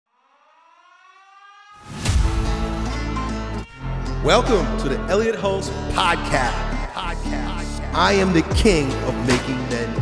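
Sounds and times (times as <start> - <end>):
rising siren-like tone: 0.1 - 5.1.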